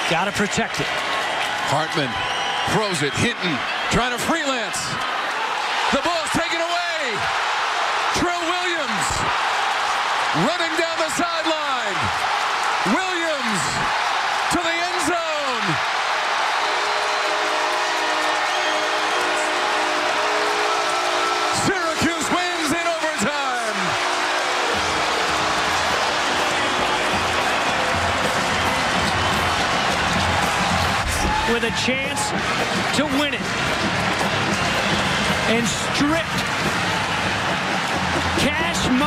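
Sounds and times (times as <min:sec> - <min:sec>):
stadium crowd cheering: 0:00.0 - 0:39.0.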